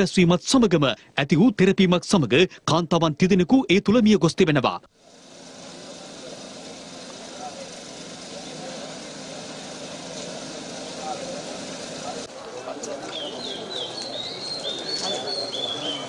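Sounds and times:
street traffic hum: 4.9s - 16.0s
faint indistinct voices: 5.0s - 16.0s
birds chirping: 12.9s - 16.0s.

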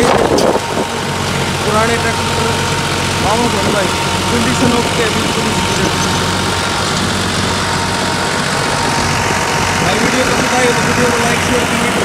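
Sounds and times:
tractor diesel engine chugging: 0.0s - 12.0s.

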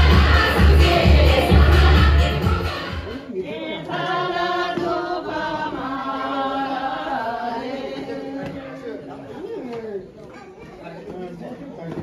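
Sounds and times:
people chattering: 7.6s - 12.0s.

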